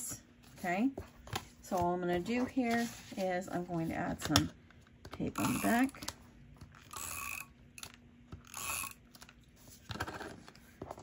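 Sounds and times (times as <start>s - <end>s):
tape runner ratcheting whir: 6.8s - 9.2s.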